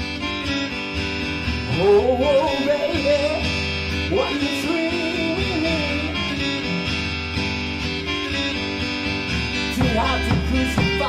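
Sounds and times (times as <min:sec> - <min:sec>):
bass guitar: 0:00.0 - 0:11.0
strummed acoustic guitars: 0:00.0 - 0:11.0.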